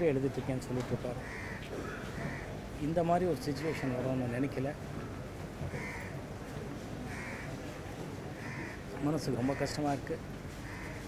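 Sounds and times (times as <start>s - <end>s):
low steady background hum: 0.0s - 11.0s
crow cawing: 1.2s - 2.6s, 5.7s - 6.2s, 7.1s - 7.6s, 8.3s - 9.9s, 10.5s - 11.0s.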